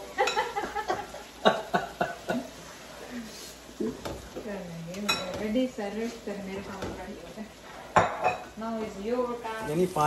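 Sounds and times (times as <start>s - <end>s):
spatula scraping and knocking pan: 3.8s - 9.0s.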